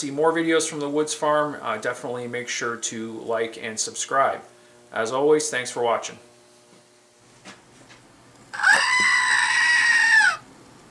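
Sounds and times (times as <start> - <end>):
goat figurine screaming: 8.5 - 10.4.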